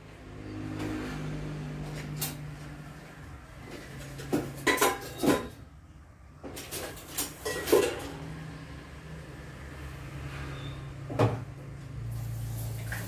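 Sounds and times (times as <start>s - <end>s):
utensils clinking against pans: 3.8s - 5.7s, 6.6s - 8.2s.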